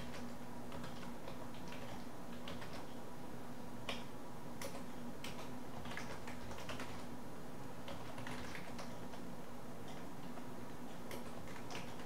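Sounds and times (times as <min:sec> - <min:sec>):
steady low hum: 0:00.0 - 0:12.0
computer keyboard key clicks: 0:07.9 - 0:09.2, 0:11.0 - 0:12.0.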